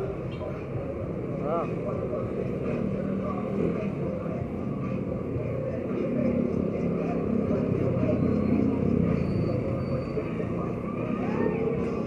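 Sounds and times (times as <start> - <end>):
cars passing: 0.0 - 12.0
motorcycles passing: 0.0 - 12.0.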